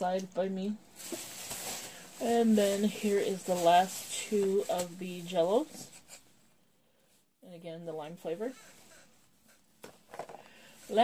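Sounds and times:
soft handling noise: 0:01.0 - 0:05.9.

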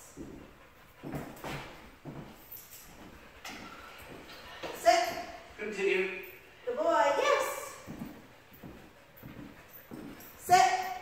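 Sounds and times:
footsteps on wooden floor: 0:00.0 - 0:05.4, 0:07.6 - 0:10.4.

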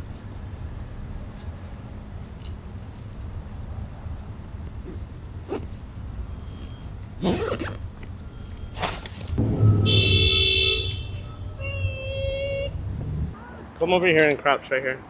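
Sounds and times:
street traffic rumbling: 0:00.0 - 0:15.0
high steady tone: 0:09.4 - 0:12.8.

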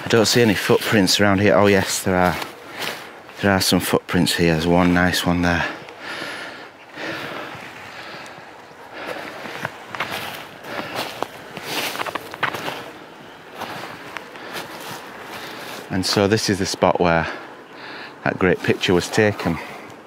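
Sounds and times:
footsteps crunching through snow: 0:00.0 - 0:03.9, 0:07.1 - 0:16.2.

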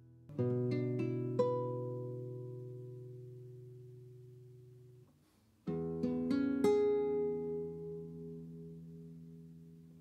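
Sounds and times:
acoustic guitar chord ringing: 0:00.0 - 0:05.0.

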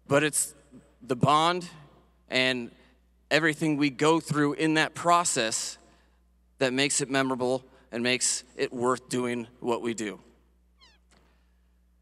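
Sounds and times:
man talking: 0:00.0 - 0:05.8, 0:06.6 - 0:10.3.

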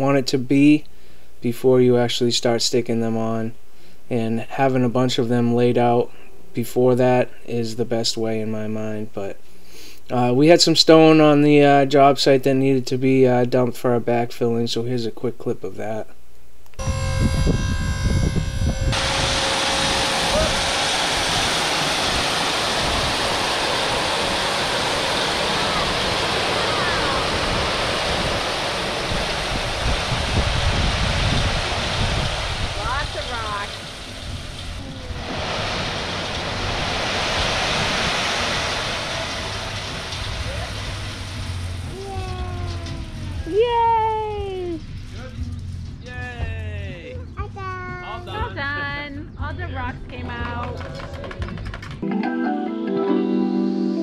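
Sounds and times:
hydraulic pump motor whining: 0:16.8 - 0:24.7.

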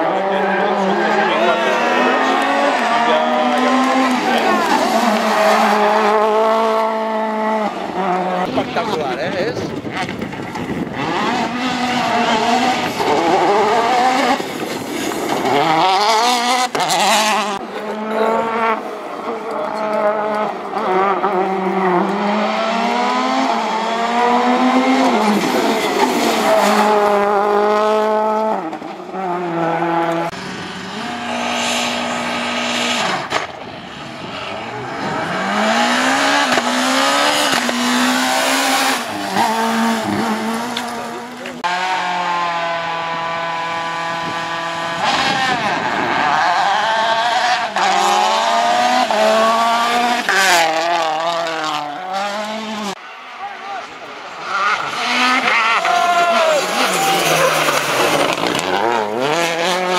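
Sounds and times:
rally cars passing at speed: 0:00.0 - 0:59.9.

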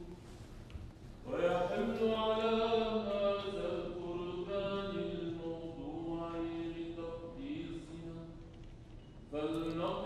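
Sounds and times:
man chanting a liturgical melody: 0:01.2 - 0:08.5.

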